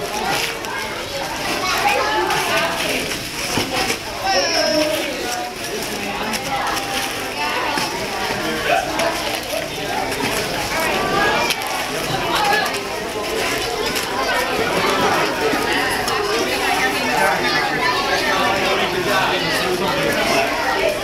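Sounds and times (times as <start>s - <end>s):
crowd chatter with children's voices: 0.0s - 21.0s.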